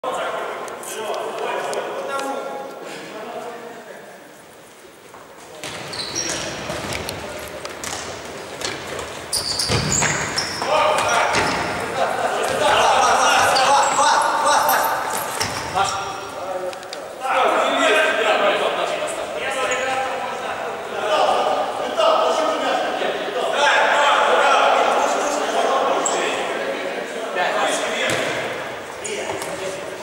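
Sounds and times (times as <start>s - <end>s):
players shouting: 10.0s - 16.4s.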